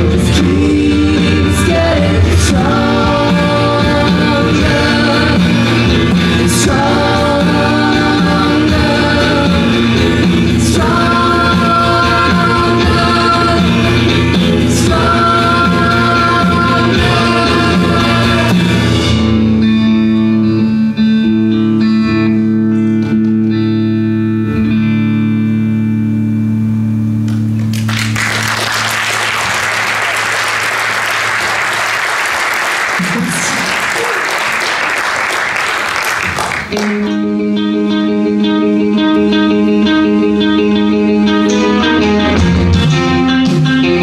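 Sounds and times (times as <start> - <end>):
rock band playing: 0.0 - 44.0.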